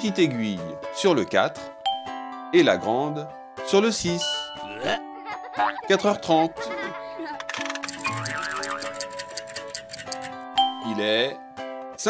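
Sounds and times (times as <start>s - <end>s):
children's background music: 0.0s - 12.0s
ticking clicks: 7.4s - 10.8s.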